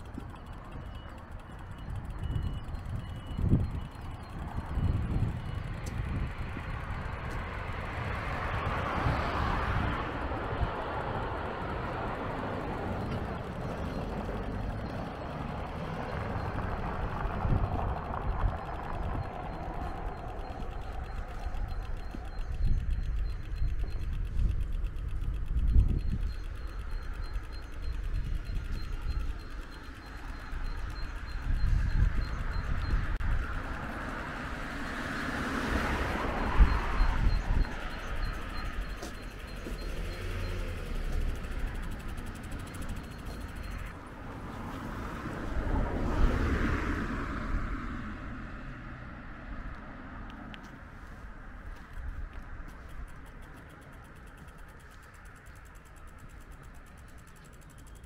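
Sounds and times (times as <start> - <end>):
wind rumble on microphone: 0.0 - 48.7, 49.3 - 58.0
car passing: 4.5 - 24.4, 28.5 - 56.5.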